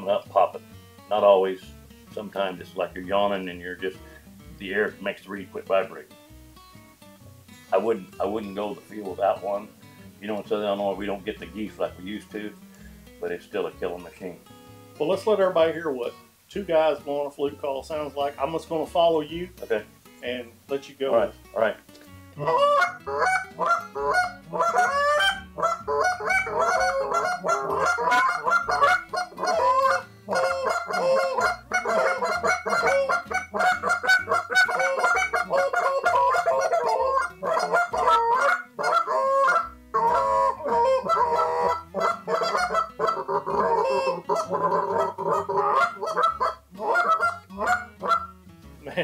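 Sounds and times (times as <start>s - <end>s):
goose calls clucking: 22.4s - 48.4s.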